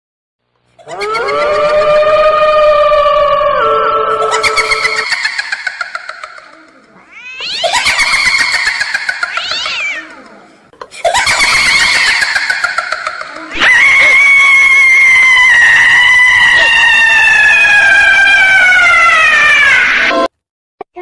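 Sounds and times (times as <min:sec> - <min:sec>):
eerie wavering cat-like wails: 0:00.8 - 0:10.6, 0:11.2 - 0:20.3.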